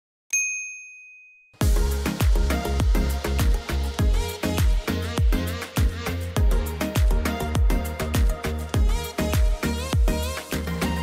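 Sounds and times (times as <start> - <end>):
notification bell ding: 0.3 - 1.6
music with heavy bass beat: 1.6 - 11.0.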